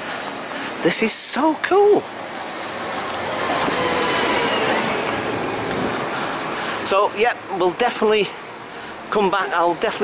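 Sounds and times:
bus driving past: 0.0 - 7.6.

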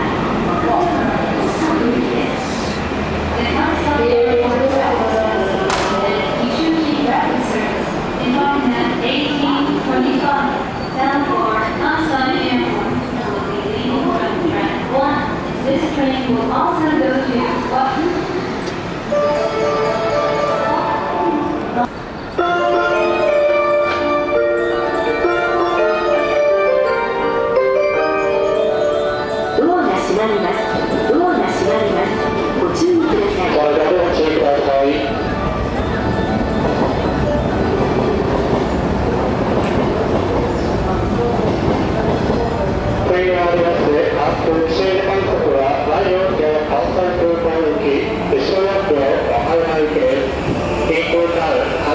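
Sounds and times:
announcement over loudspeakers: 0.0 - 18.3, 19.0 - 38.6, 40.1 - 51.9
electric train noise: 0.0 - 51.9
station platform background noise: 0.0 - 51.9
chime-like electronic melody: 19.2 - 21.6, 22.4 - 32.6.

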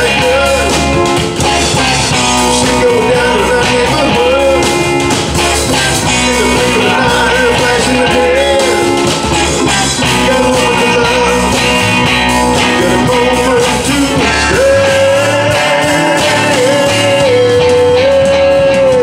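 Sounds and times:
lead guitar melody: 0.0 - 19.0
live rock band playing: 0.0 - 19.0.

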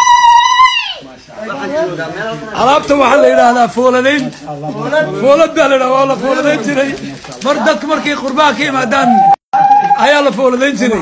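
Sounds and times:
people talking: 0.8 - 11.0.

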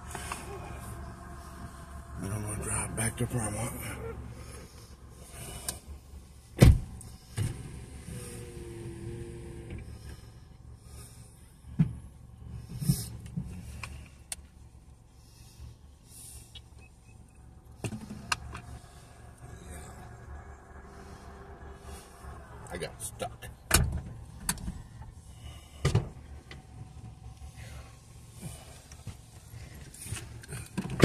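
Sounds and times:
steady hum: 0.0 - 30.8.

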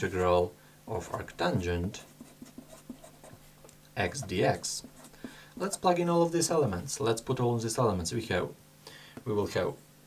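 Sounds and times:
pen scratching on paper: 1.0 - 5.8.

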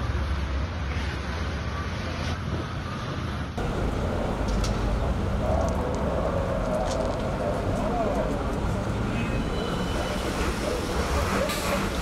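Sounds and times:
street noise: 0.0 - 12.0
vehicle engine rumble: 0.0 - 12.0.

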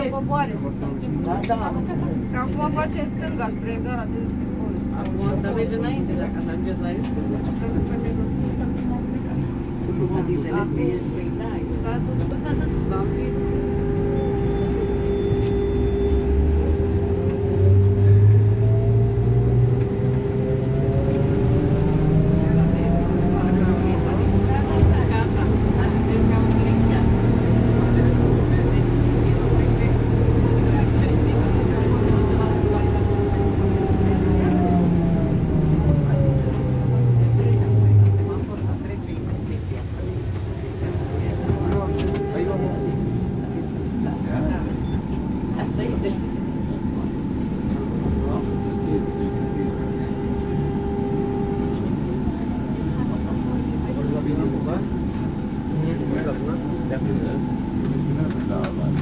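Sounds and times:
electric traction motor whine: 11.5 - 59.0.

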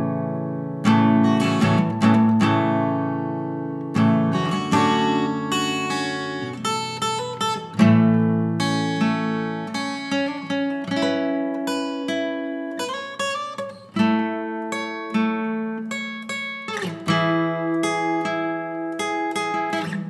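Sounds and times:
acoustic guitar strummed chords: 0.0 - 20.0.

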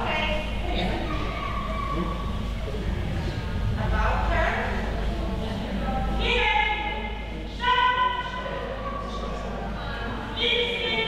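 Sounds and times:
steady low rumble: 0.0 - 10.4.

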